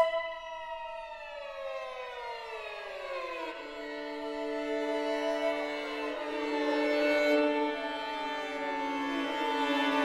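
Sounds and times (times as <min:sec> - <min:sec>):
string quartet glissando: 0:03.8 - 0:10.0.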